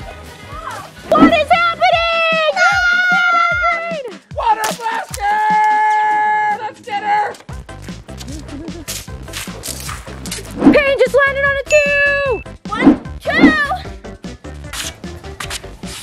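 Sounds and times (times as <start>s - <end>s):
background music with steady beat: 0.0s - 16.0s.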